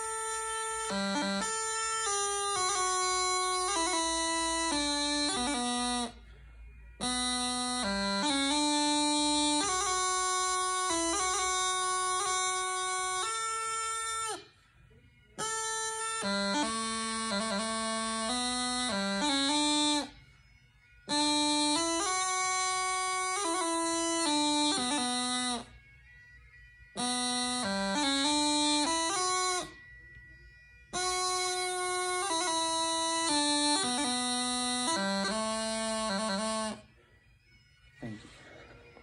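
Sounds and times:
bagpipe practice chanter playing: 0.0 - 39.0.

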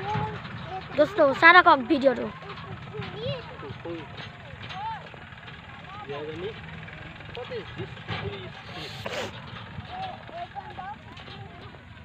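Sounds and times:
faint voices: 0.0 - 12.0
steady low rumble: 0.0 - 12.0.

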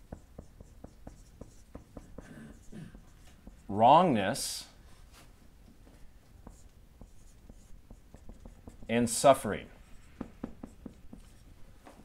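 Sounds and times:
marker writing on whiteboard: 0.0 - 12.0.

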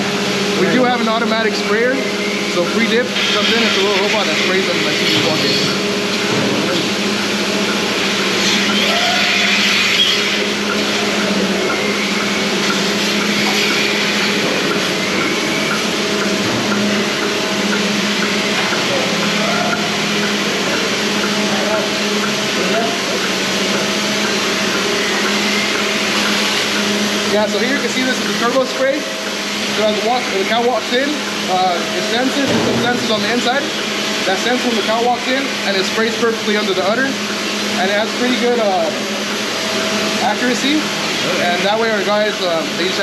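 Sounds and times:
milking equipment humming: 0.0 - 43.0.

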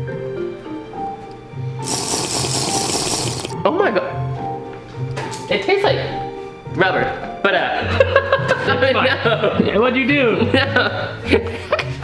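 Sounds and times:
background music with beat: 1.0 - 3.6
hissing slurp of water: 1.8 - 3.6.

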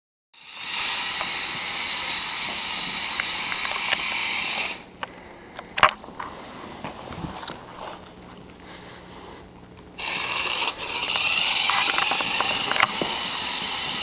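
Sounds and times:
toy truck motor whirring: 0.4 - 4.9, 10.0 - 14.0.

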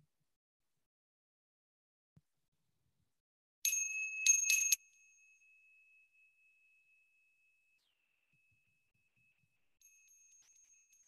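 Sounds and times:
small high-pitched bell ringing: 3.7 - 11.0.

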